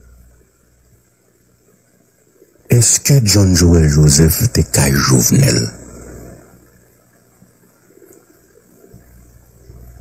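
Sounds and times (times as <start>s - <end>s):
faint low background rumble: 0.0s - 10.0s.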